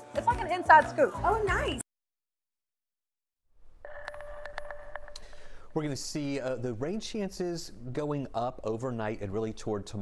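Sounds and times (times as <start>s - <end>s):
held electronic tone: 3.8s - 5.7s.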